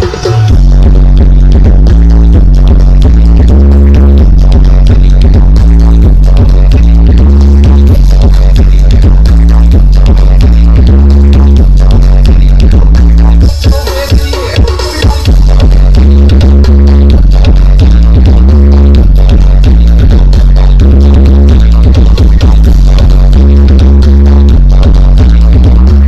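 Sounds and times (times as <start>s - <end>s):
bass-heavy music from loudspeakers: 0.0s - 26.0s.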